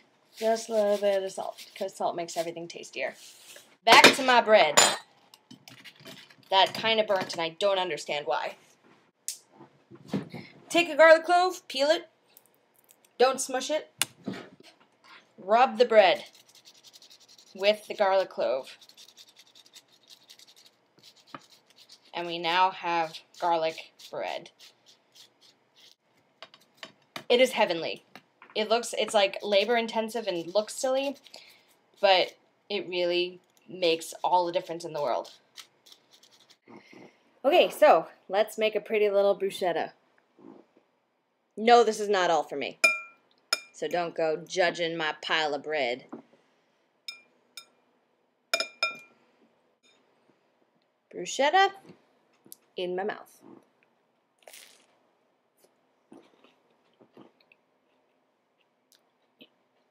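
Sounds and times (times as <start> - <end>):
garlic scraping on toast: 16.2 - 26.8, 29.4 - 32.3, 34.1 - 36.7
metal utensil clinking on glass bowl: 48.6 - 49.1.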